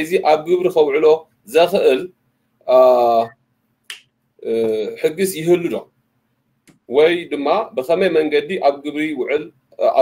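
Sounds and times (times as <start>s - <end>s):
man speaking: 0.0s - 3.4s, 4.4s - 5.9s, 6.8s - 10.0s.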